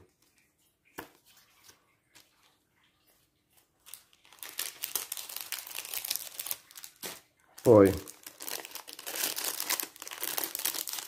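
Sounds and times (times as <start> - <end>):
plastic bag crinkling: 3.8 - 11.0.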